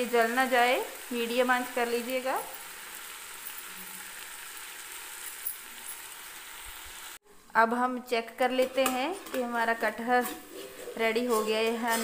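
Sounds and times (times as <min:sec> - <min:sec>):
curry sizzling under a lid: 0:00.0 - 0:07.2, 0:08.2 - 0:12.0.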